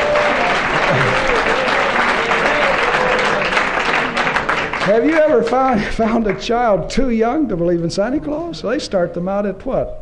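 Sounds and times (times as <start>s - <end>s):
congregation applauding: 0.0s - 6.5s.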